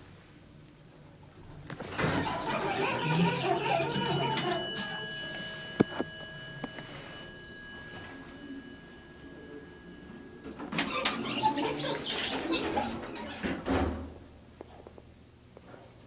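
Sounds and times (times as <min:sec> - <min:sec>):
elevator chime: 0:01.9 - 0:13.0.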